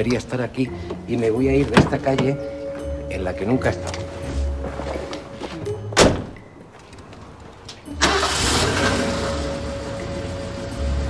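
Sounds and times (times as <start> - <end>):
car door slamming: 6.0 - 6.4
car engine starting and running: 7.9 - 11.0.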